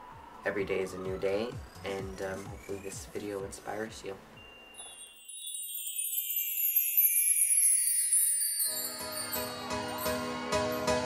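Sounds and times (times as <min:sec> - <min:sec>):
shimmering chime effect: 0:04.4 - 0:11.0.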